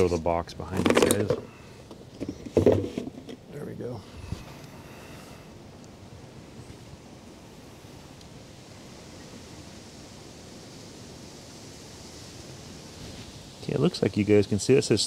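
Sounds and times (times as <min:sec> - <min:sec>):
background hiss: 0:00.0 - 0:15.0.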